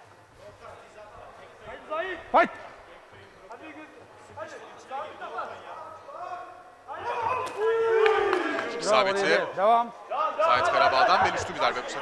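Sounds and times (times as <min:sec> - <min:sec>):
hall background noise: 0:00.0 - 0:12.0
loud shout: 0:06.1 - 0:09.0.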